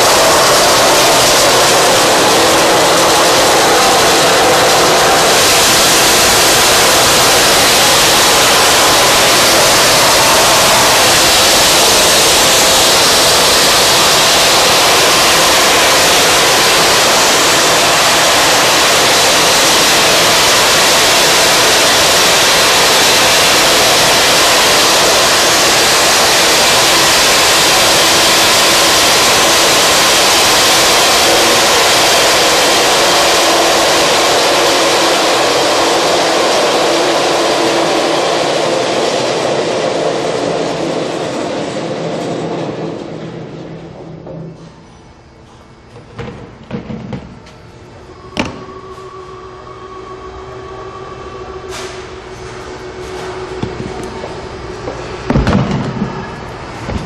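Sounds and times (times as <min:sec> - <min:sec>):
hammer mill grinding: 0:00.0 - 0:39.3.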